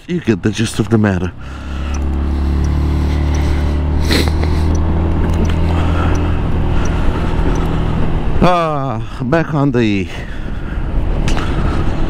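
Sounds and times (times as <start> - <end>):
scooter engine cruising: 0.4 - 8.1.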